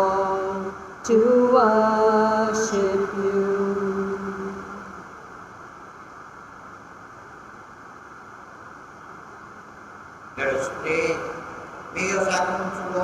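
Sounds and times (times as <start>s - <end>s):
steady background hiss: 0.0s - 13.0s.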